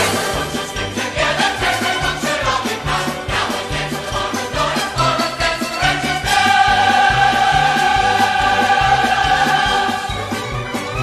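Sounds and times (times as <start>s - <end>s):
chorus and orchestra holding chord: 0.0s - 10.3s.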